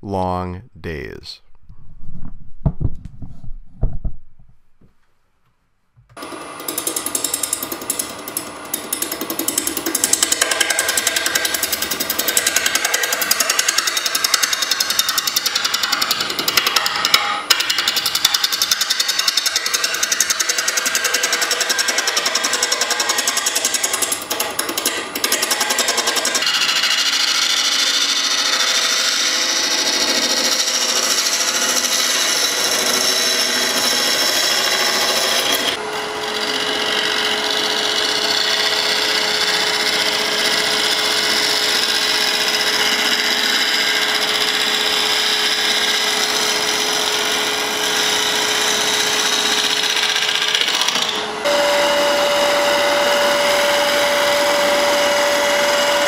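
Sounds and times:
lathe scraper cutting bowl: 0:06.2 - 0:56.0.

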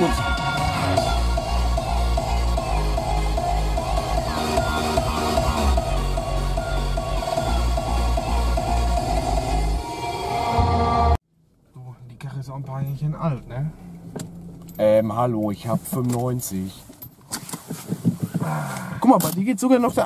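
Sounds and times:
subwoofer bass beat: 0:00.0 - 0:10.6
electronic dance music on car stereo: 0:00.0 - 0:11.1.

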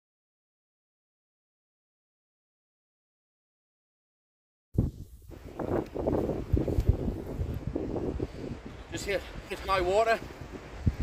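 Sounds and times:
wind buffeting microphone: 0:04.8 - 0:11.0.

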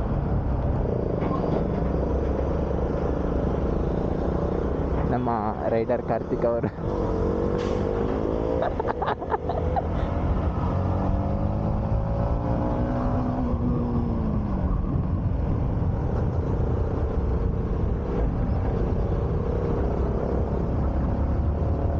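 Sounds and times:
motorcycle engine revving: 0:05.7 - 0:14.8.

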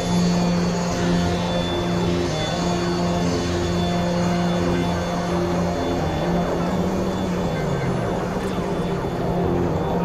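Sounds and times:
electronic synthesizer drone: 0:00.0 - 0:10.0.

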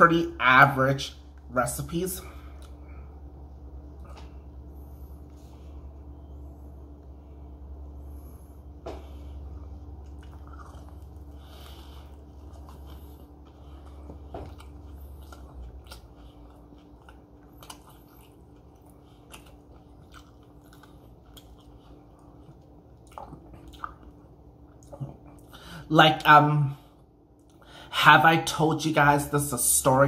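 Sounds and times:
low steady hum: 0:00.0 - 0:30.0
person chewing food: 0:02.2 - 0:25.7.

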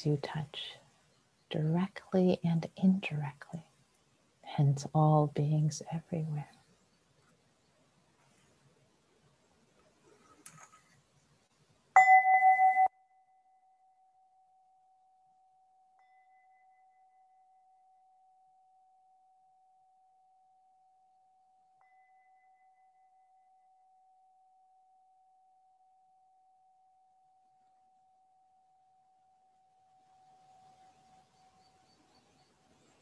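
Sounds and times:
soft bell strikes: 0:12.0 - 0:12.9
singing bowl ringing: 0:12.0 - 0:14.7, 0:16.0 - 0:30.6.

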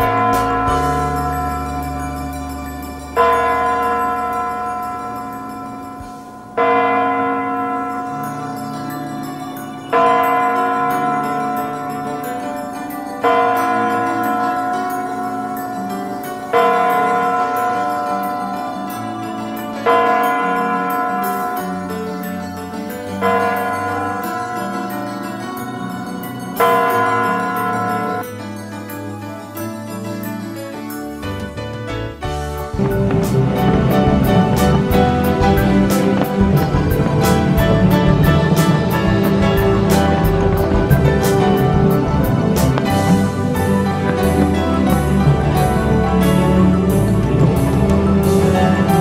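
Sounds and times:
large clock bell striking: 0:00.0 - 0:18.9
background music with steady beat: 0:00.0 - 0:49.0.

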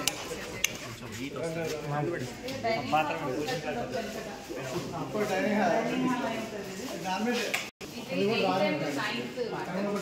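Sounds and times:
voices talking in a hall: 0:00.0 - 0:10.0.

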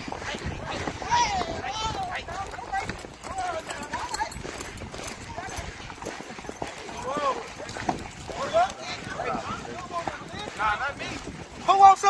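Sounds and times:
horse hooves clip-clopping: 0:00.0 - 0:12.0
people talking: 0:00.0 - 0:12.0.

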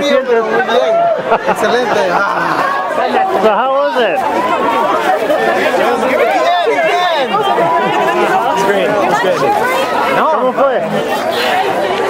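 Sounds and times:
voices talking and exclaiming: 0:00.0 - 0:12.0.

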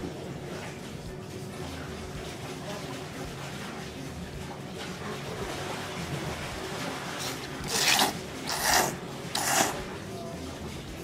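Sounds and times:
person slurping noodles: 0:07.2 - 0:09.9.

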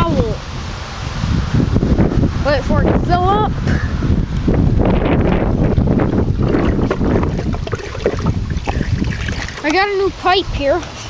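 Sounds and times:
wind rumbling on microphone: 0:00.0 - 0:11.0
water rushing and draining: 0:05.2 - 0:10.4.

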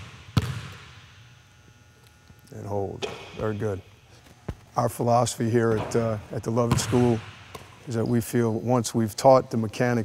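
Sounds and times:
basketball bouncing on wooden floor: 0:00.0 - 0:00.9, 0:06.6 - 0:07.7.

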